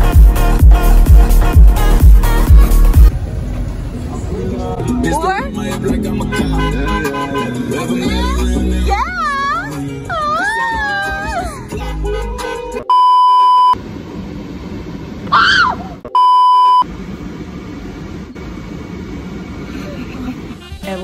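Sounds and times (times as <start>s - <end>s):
high-pitched voice squeal: 10.1s - 11.6s, 15.3s - 16.0s
high electronic censor bleeps: 12.9s - 13.8s, 16.1s - 16.8s.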